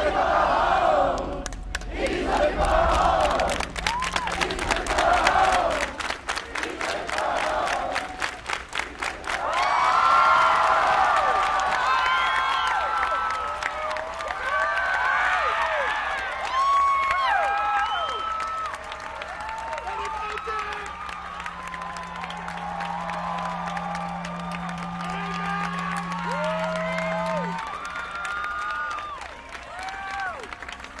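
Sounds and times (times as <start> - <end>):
steady low tone: 0.0 - 11.8, 18.7 - 31.0
crowd cheering and clapping: 0.0 - 31.0.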